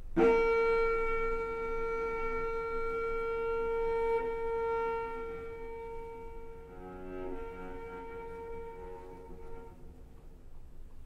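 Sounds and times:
cello holding long high note: 0.0s - 10.6s.

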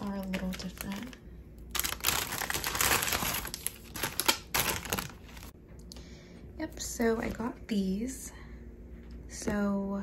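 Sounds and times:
plastic bags crinkling: 0.0s - 5.6s.

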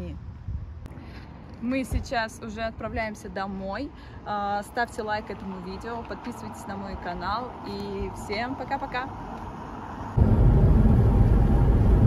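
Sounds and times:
car engine and road noise: 0.1s - 12.0s.

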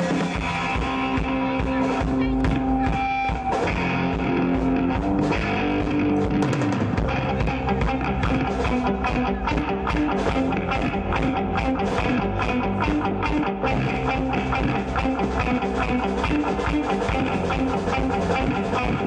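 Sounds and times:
drum kit beat: 0.0s - 19.0s
electric guitars: 0.0s - 19.0s.

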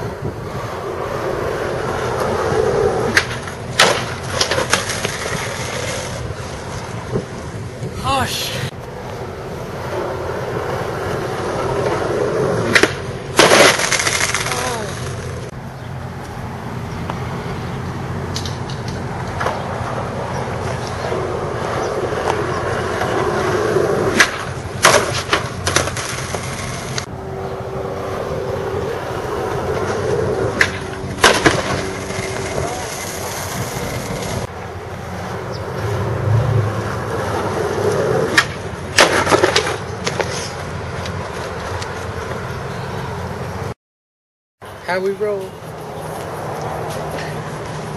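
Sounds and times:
skateboard wheels rolling on asphalt: 0.0s - 43.8s, 44.6s - 47.9s
skateboard clacking on pavement: 3.1s - 7.3s, 11.0s - 15.5s, 18.3s - 27.1s, 29.3s - 34.5s, 37.2s - 42.5s.

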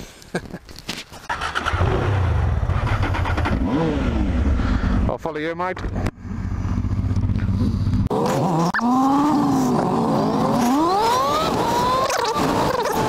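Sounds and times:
motorcycle engine revving: 1.3s - 5.1s, 5.8s - 13.0s.

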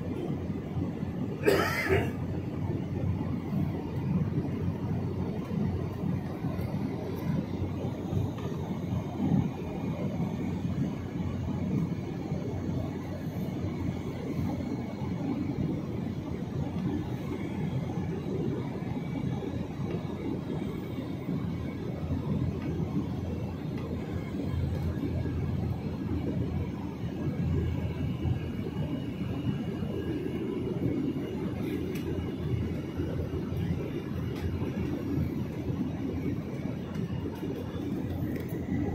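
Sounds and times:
airliner cabin engine and airflow noise: 0.0s - 38.9s.

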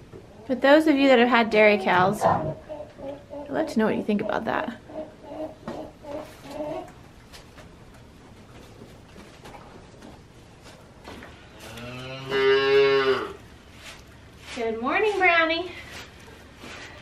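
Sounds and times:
cow mooing: 11.6s - 13.4s.

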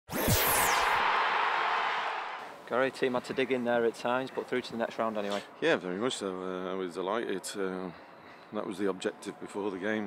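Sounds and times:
swoosh with falling pitch: 0.1s - 1.9s.

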